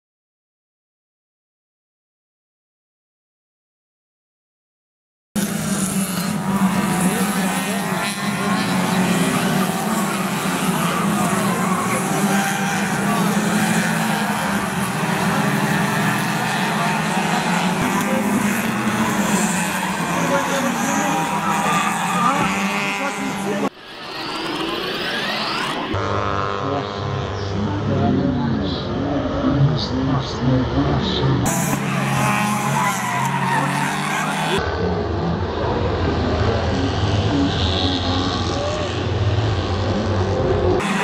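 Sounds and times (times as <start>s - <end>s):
crowd voices: 5.4s - 41.0s
race car engines revving past: 5.4s - 41.0s.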